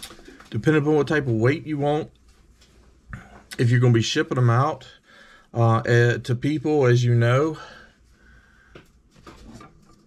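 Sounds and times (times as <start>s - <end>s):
soft clicks and rustles: 0.0s - 3.6s.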